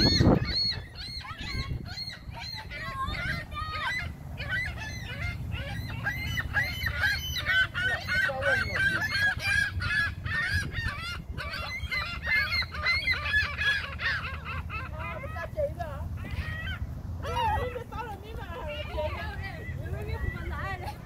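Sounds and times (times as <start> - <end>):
gulls calling: 0.0 - 21.0.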